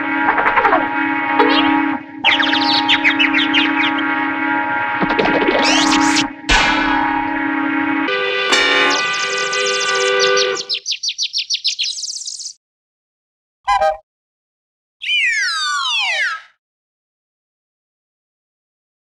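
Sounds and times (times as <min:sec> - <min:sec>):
distorted electronic tones: 0:00.0 - 0:10.8
downward sweeping tones: 0:00.0 - 0:10.8.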